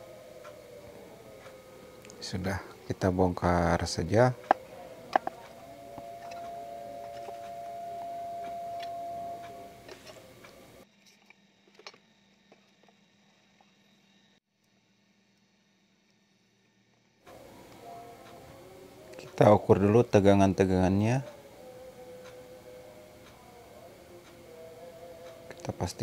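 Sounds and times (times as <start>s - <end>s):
steady faint tone: 0.0s - 10.9s, 17.3s - 26.0s
room noise: 0.0s - 14.4s, 16.1s - 26.0s.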